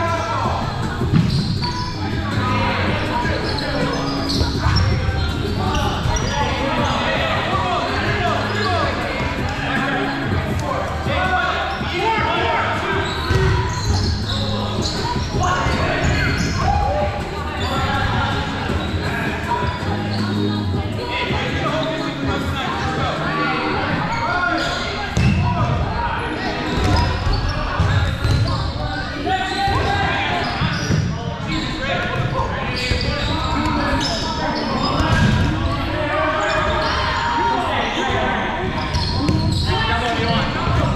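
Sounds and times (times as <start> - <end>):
players calling out: 0.0 - 40.9.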